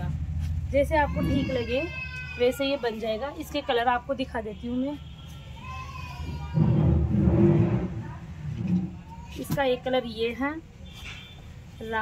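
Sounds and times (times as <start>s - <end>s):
low rumbling noise: 6.3s - 9.2s.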